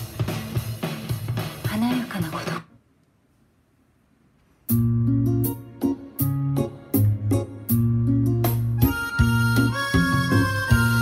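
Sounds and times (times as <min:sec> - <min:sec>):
music with sustained chords: 0:04.7 - 0:11.0.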